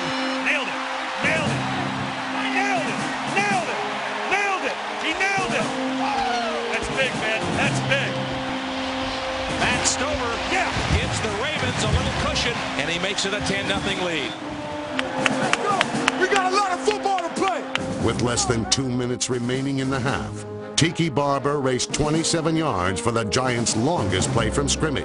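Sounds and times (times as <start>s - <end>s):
stadium crowd cheering: 0.0s - 19.0s
orchestral film music: 0.0s - 25.0s.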